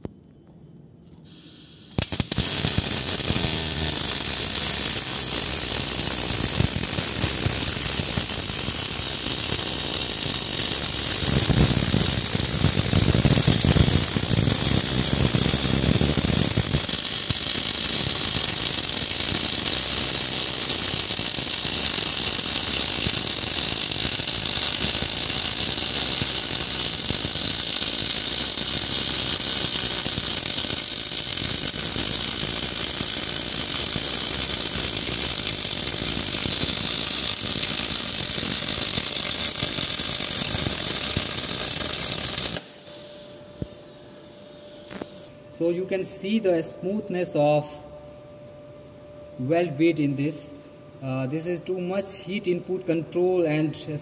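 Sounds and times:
welding arc crackling and buzzing: 0:01.3 - 0:45.3.

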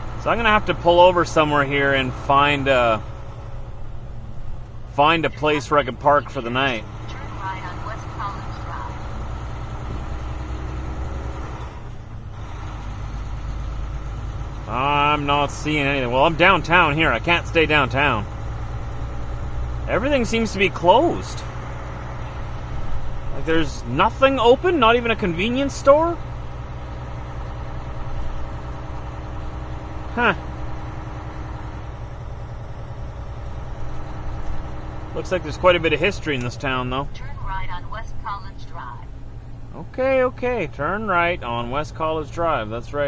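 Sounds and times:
diesel truck engine droning: 0:00.0 - 0:43.0.

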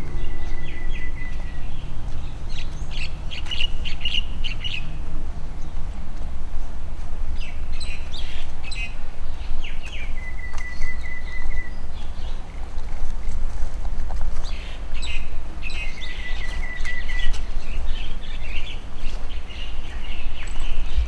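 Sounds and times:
low rumble: 0:00.0 - 0:09.7
small birds chirping: 0:00.0 - 0:21.0.

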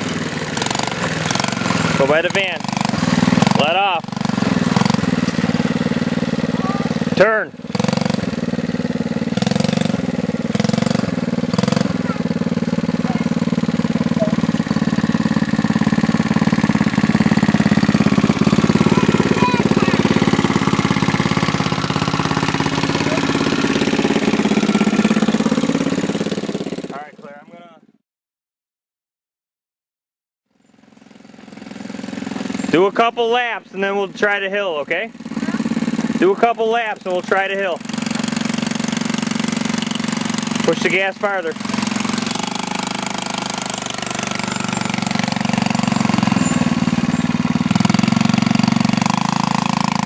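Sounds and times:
small atv engine running: 0:00.0 - 0:27.7, 0:30.5 - 0:50.0.

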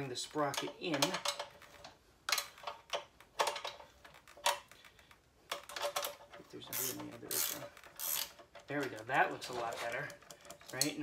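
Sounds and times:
wrench clicking on metal bolt: 0:05.5 - 0:08.7.

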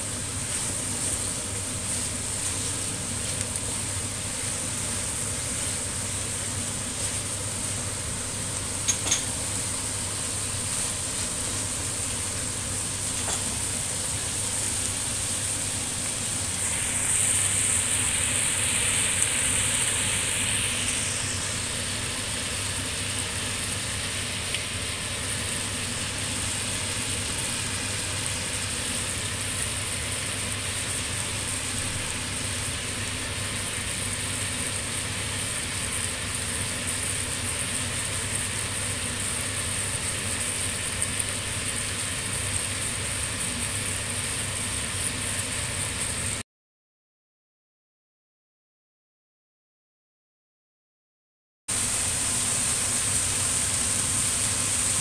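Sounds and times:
food sizzling in a wok: 0:00.0 - 0:46.4, 0:51.7 - 0:55.0.

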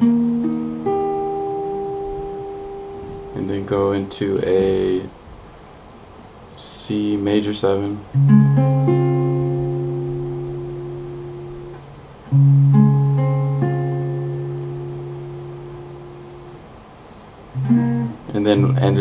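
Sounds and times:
acoustic guitar chord plucked: 0:00.0 - 0:05.0, 0:08.1 - 0:16.7, 0:17.5 - 0:19.0.

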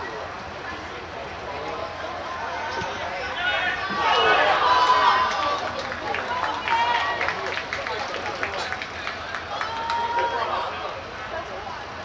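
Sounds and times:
young voices shouting and cheering: 0:02.2 - 0:11.0.

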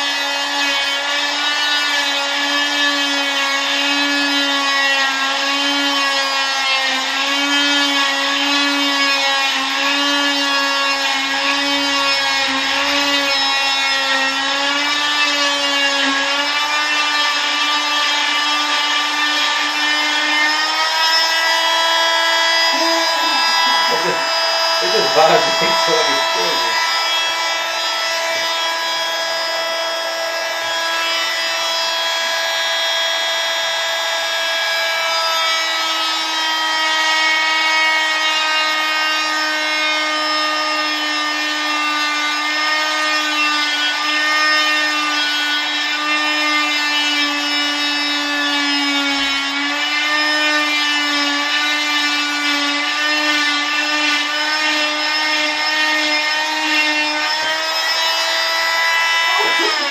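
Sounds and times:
cast saw whining: 0:00.0 - 0:59.9.

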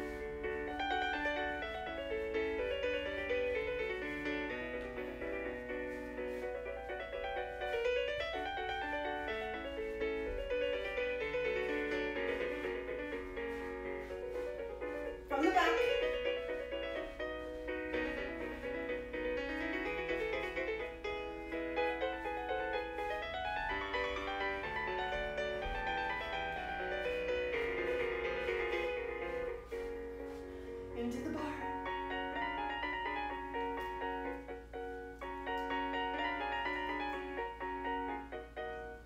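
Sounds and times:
solo piano music: 0:00.0 - 0:39.0.

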